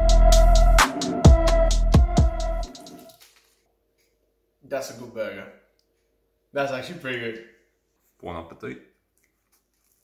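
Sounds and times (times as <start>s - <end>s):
electronic dance music: 0.0s - 3.0s.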